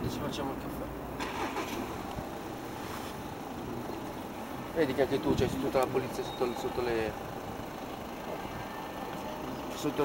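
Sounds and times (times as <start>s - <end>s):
motorcycle engine idling: 3.2s - 10.0s.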